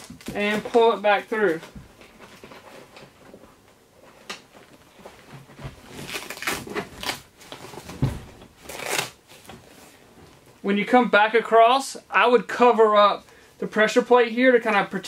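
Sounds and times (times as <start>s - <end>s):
fabric rustling: 0.0s - 10.6s.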